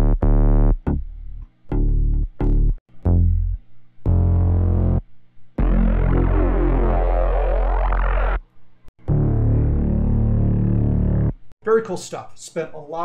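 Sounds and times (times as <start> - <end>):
synth bass notes: 0.0 - 11.5.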